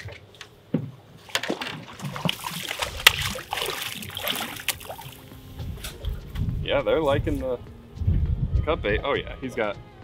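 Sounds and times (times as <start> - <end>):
fish splashing in water: 1.4 - 5.2.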